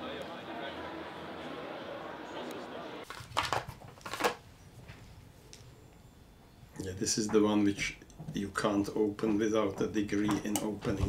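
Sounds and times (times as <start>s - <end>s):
indistinct background voices: 0.0s - 3.0s
plastic packaging crackling: 3.0s - 4.5s.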